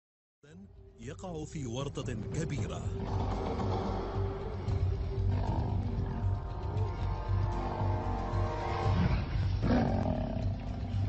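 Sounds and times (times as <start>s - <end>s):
lion growling: 2.9s - 6.5s, 7.5s - 11.0s.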